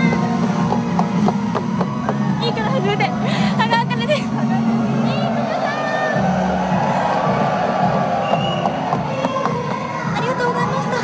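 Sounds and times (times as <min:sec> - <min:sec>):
audience cheering and chattering: 0:00.0 - 0:11.0
music playing: 0:00.0 - 0:11.0.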